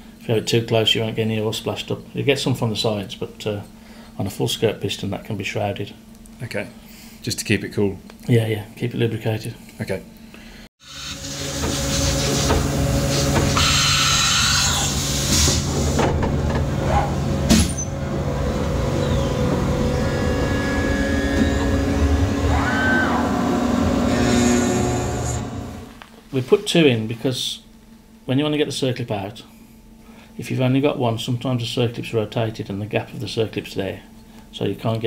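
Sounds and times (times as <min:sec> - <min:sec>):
milling machine cutting metal: 0:10.8 - 0:26.0
machine whine: 0:10.8 - 0:26.2.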